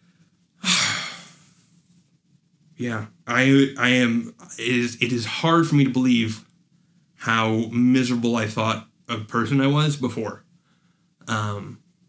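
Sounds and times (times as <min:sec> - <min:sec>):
man sighing: 0:00.6 - 0:01.4.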